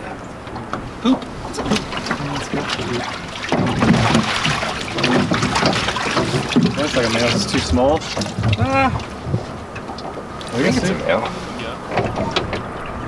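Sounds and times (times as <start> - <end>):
steady rush of noise: 0.0 - 13.0
water splashing and sloshing: 0.0 - 13.0
sharp knocks: 0.6 - 10.1.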